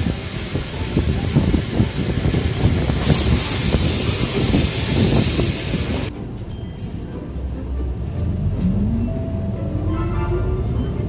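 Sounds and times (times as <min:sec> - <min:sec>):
steady hiss: 0:00.0 - 0:06.1
diesel bus engine rumbling: 0:00.0 - 0:11.0.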